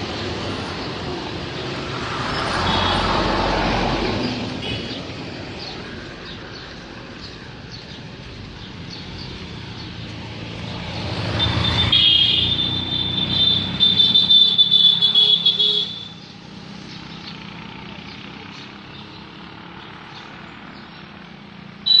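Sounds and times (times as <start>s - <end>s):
motor vehicle passing: 0.0s - 14.2s
outdoor background noise: 0.0s - 22.0s.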